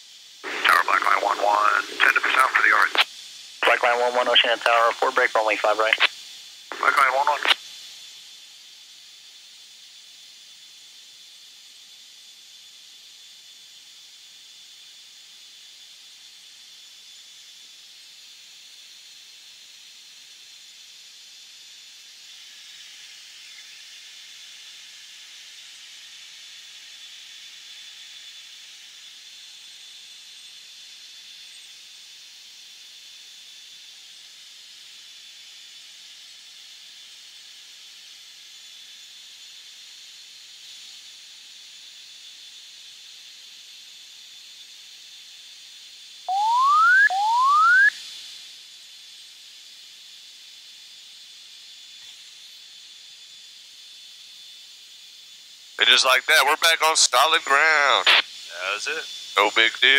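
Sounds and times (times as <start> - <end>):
intercom hiss: 0.4 - 7.7, 46.3 - 47.9, 55.8 - 59.9
faint high tone: 46.3 - 47.9
rising electronic tones: 46.3 - 47.9.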